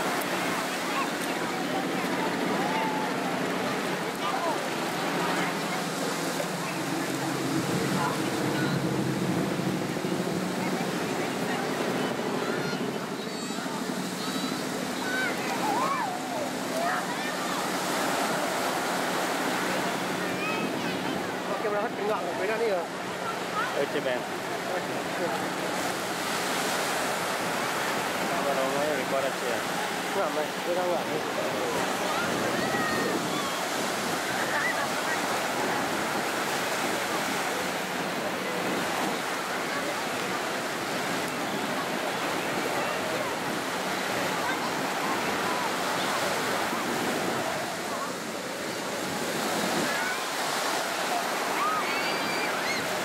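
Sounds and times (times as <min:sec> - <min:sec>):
faint voices: 0:00.0 - 0:53.0
ocean surf washing: 0:00.0 - 0:53.0
people calling out: 0:12.4 - 0:17.7.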